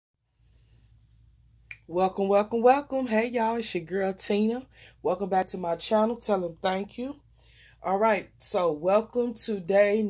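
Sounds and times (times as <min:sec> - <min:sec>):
woman speaking: 0:01.7 - 0:07.2, 0:07.8 - 0:10.0.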